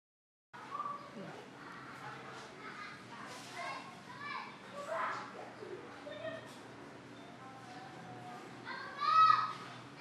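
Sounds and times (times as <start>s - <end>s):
distant children shouting: 0.6s - 6.6s, 8.1s - 10.0s.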